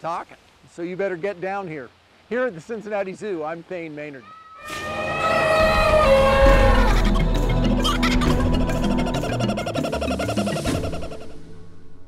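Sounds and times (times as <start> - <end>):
kookaburra laughing call: 5.4 - 11.4.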